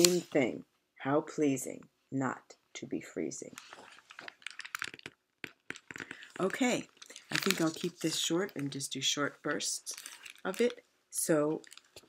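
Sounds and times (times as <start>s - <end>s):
paper book crackling: 0.0s - 0.4s, 5.7s - 8.8s, 9.8s - 10.8s, 11.6s - 12.0s.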